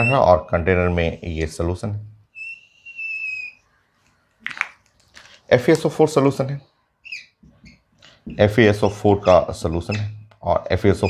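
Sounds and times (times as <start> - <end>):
whiteboard marker squeaking: 0.0 - 1.3, 2.3 - 4.7, 7.0 - 11.0.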